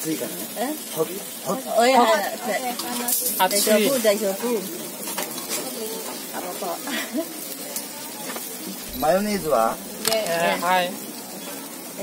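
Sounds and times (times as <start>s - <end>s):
food sizzling on a griddle: 0.0s - 12.0s.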